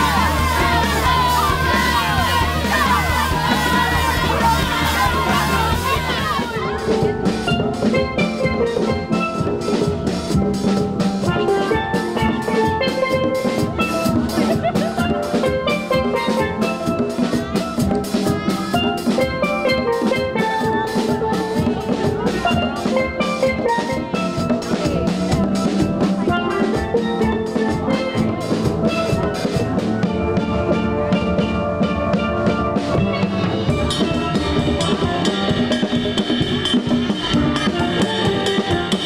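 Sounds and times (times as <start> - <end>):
drum kit beat: 0.0 - 39.0
steel pans struck with mallets: 0.0 - 39.0.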